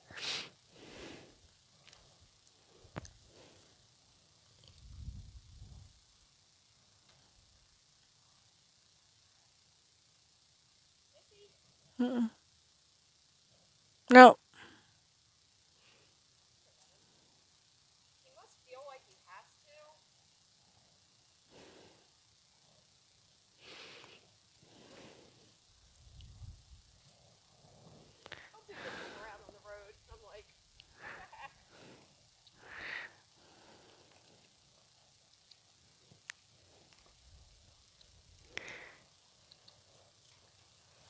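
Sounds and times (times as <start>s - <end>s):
soft breathy noises: 0.0s - 4.0s, 20.8s - 22.8s, 23.5s - 35.0s, 38.3s - 41.0s.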